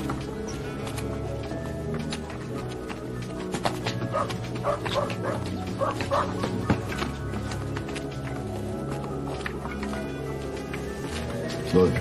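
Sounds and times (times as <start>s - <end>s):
dog barking: 4.1s - 6.8s.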